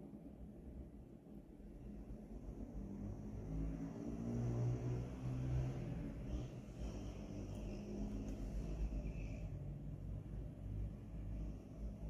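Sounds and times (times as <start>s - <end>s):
vehicle engine hum: 2.4s - 12.0s.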